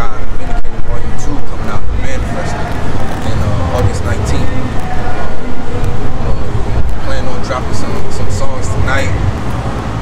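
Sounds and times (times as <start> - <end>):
faint voices: 0.0 - 10.0
loud low rumble: 0.0 - 10.0.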